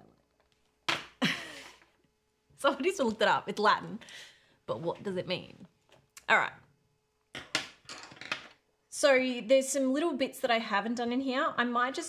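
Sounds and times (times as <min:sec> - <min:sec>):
woman laughing breathily: 0:01.2 - 0:01.9.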